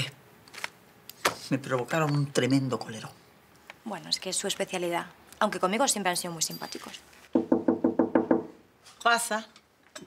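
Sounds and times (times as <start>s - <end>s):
knocking on wooden door: 7.4s - 8.6s.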